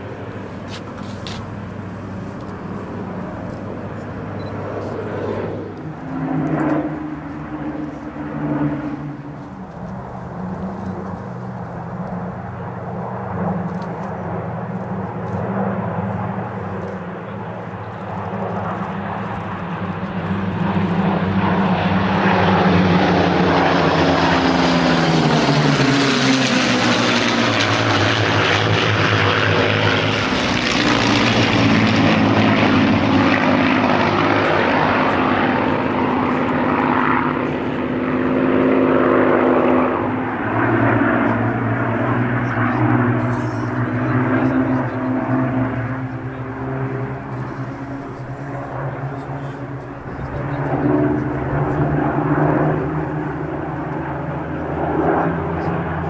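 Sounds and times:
propeller aircraft engines droning: 0.0 - 56.0.

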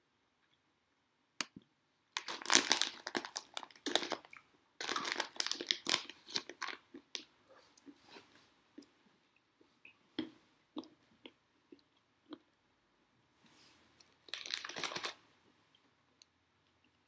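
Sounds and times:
crinkling and crunching: 2.2 - 8.4, 14.0 - 15.2.

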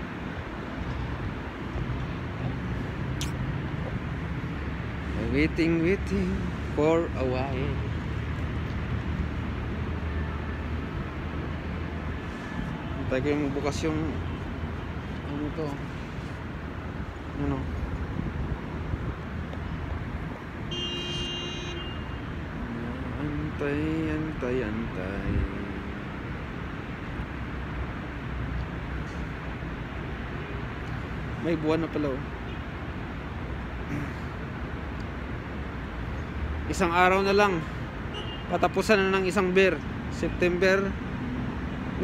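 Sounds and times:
city background rumble: 0.0 - 42.0.

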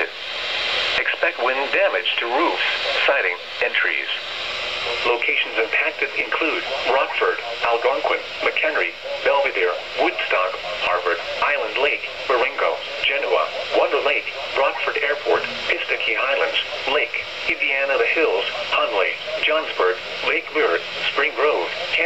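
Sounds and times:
automated voice on radio speaker: 0.0 - 22.0.

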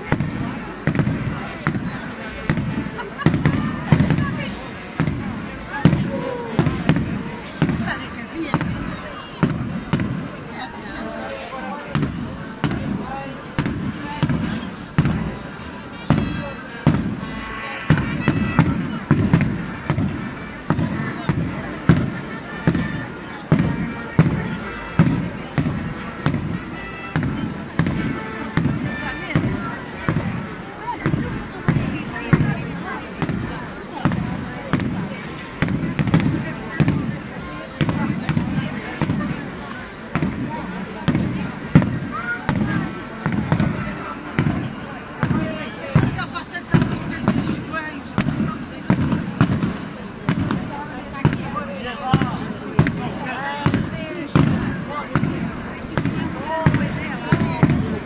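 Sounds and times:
crowd chatter: 0.0 - 58.0
drums beating march rhythm: 0.0 - 58.0.

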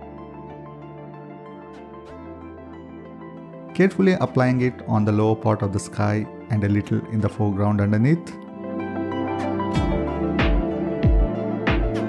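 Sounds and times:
deep drum beat: 9.8 - 12.0.

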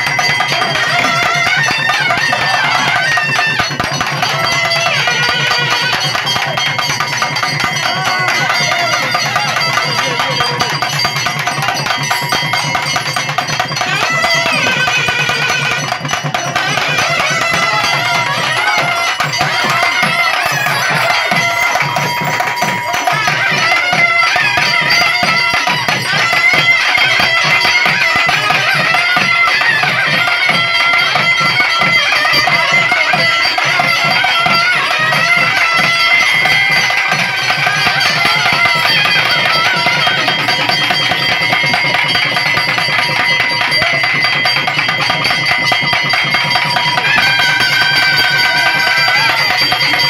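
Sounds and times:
fast drum beats: 0.0 - 50.0
reedy wind instrument melody: 0.0 - 50.0.

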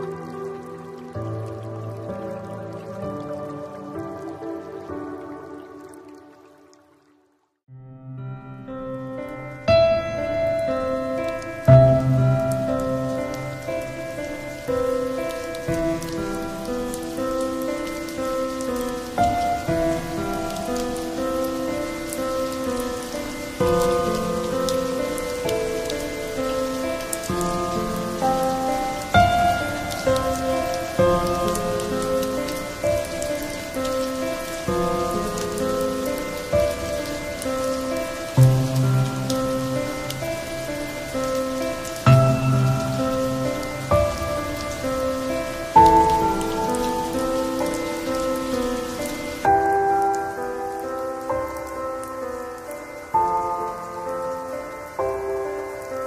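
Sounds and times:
falling rain: 0.0 - 56.0
slow soft instrumental music: 0.0 - 56.0.

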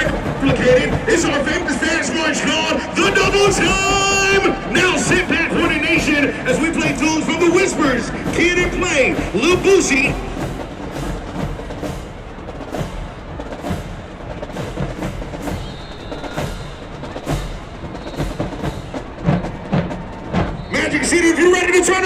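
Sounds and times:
low drum beat: 0.0 - 22.0
marching drumline cadence: 0.0 - 22.0.

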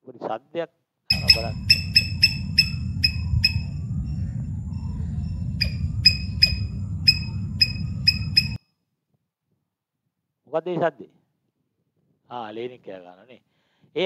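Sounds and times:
sharp ringing clinks: 1.1 - 3.7
steady low rumble: 1.1 - 8.6.

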